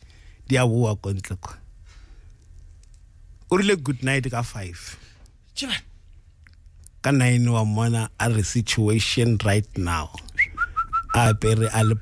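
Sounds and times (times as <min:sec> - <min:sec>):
person talking: 0:03.5 - 0:05.9, 0:07.0 - 0:10.3, 0:11.1 - 0:12.0
person whistling: 0:10.3 - 0:12.0.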